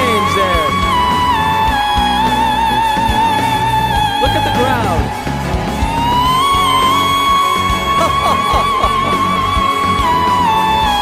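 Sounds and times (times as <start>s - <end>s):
band accompaniment with drums: 0.0s - 11.0s.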